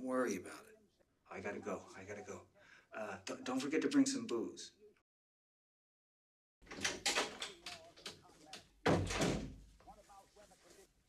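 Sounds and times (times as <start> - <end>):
knocks and clicks: 6.6 - 9.5
door slamming shut: 8.8 - 9.7.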